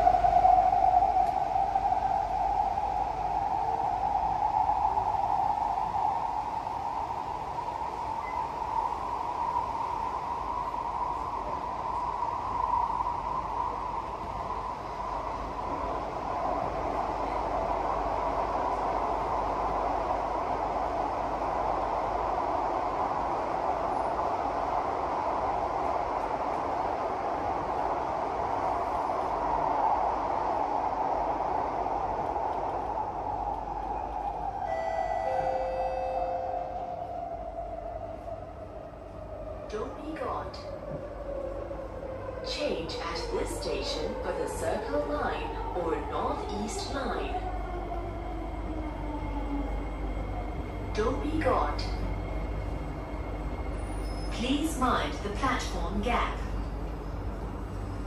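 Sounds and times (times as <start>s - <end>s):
train rumble with hum: 0.0s - 58.0s.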